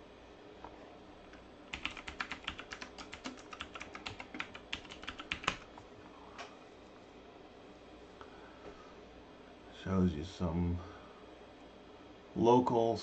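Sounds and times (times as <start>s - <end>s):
typing on computer keyboard: 1.7s - 5.7s.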